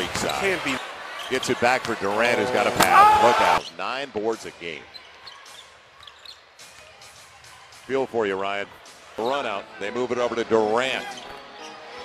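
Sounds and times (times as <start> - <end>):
commentator speaking: 1.6 - 3.6.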